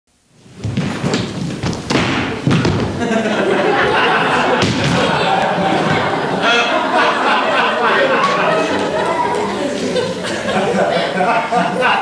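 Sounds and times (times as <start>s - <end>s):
body thudding onto stage floor: 0.6s - 3.0s, 4.6s - 6.1s.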